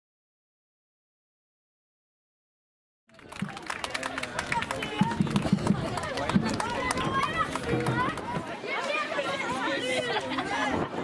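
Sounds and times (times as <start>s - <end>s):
voices chattering: 3.2s - 11.0s.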